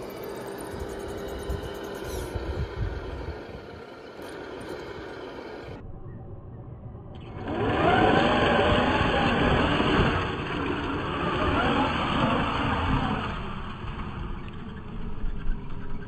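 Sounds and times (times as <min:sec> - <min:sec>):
electric motor whining: 0:00.0 - 0:05.8, 0:07.3 - 0:13.8
tires churning through wet mud: 0:07.4 - 0:15.2.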